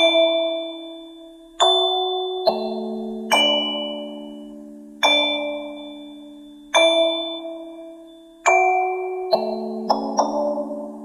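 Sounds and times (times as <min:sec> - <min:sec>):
bell-like struck notes: 0:00.0 - 0:11.0.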